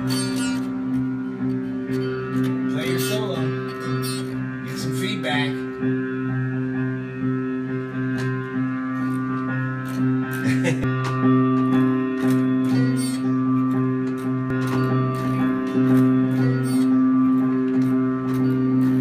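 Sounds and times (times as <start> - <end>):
steady held drone: 0.0 - 19.0
toy guitar strummed and slapped: 8.1 - 19.0.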